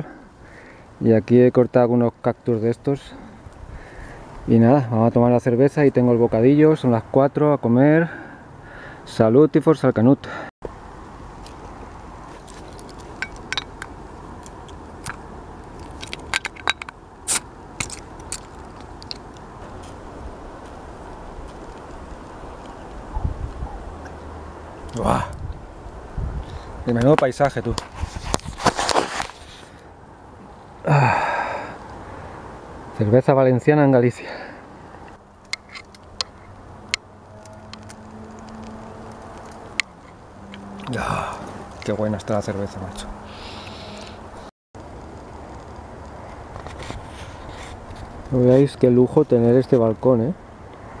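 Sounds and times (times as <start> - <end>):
low engine hum: 34.7 - 46.6.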